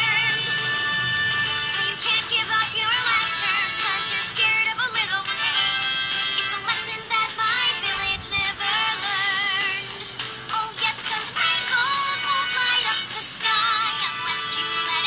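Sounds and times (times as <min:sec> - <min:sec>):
woman singing with vibrato: 0:00.0 - 0:05.8, 0:06.4 - 0:09.9, 0:10.6 - 0:15.0
sped-up backing music: 0:00.0 - 0:15.0.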